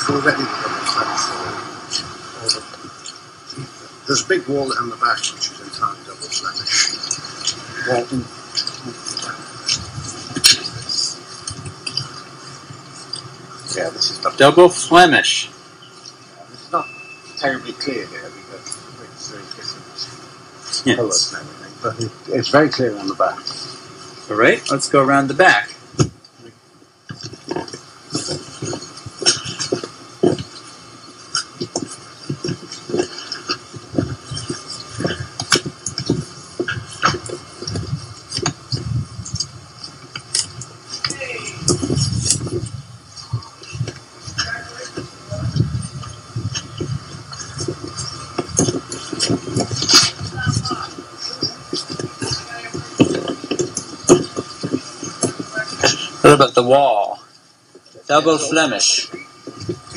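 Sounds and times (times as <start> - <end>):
faint indistinct talk: 0.0 - 15.5, 40.3 - 57.2
low rumbling bursts: 0.0 - 26.6, 27.8 - 56.3
footsteps outdoors: 25.9 - 56.4, 57.3 - 59.9.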